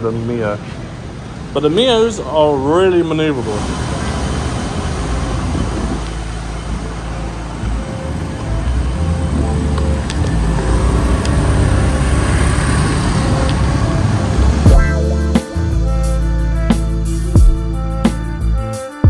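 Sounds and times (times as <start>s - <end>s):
scooter engine in traffic: 0.0s - 18.6s
background music: 4.0s - 19.0s.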